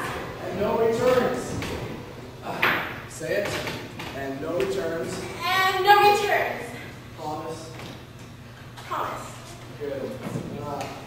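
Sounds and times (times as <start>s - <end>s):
voices echoing in a hall: 0.0s - 8.1s.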